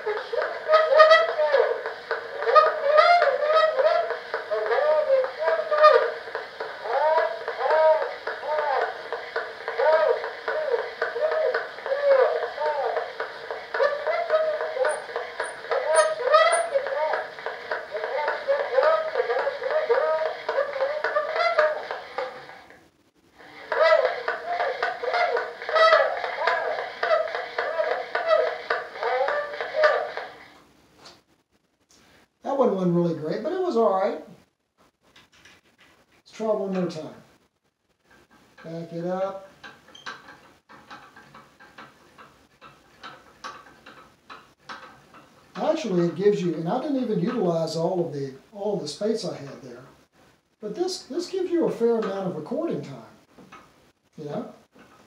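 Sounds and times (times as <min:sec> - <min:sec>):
thin recorded voice from phonograph: 0:00.0 - 0:30.6, 0:32.4 - 0:34.4, 0:36.2 - 0:37.5, 0:38.6 - 0:40.4, 0:45.5 - 0:50.0, 0:50.6 - 0:53.3, 0:54.1 - 0:54.7.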